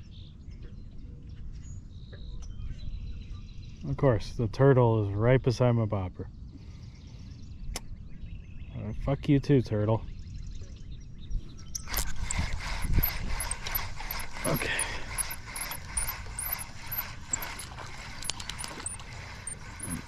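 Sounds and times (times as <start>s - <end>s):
fishing reel clicking: 11.8s - 20.0s.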